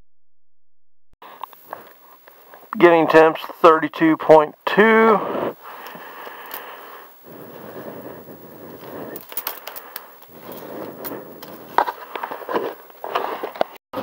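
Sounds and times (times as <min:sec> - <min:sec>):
handling clicks and knocks: 0:09.2 - 0:12.7.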